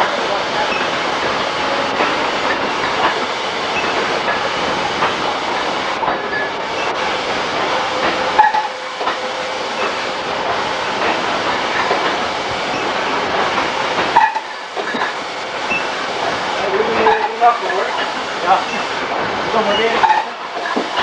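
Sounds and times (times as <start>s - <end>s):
labelling machine clatter: 0.0s - 21.0s.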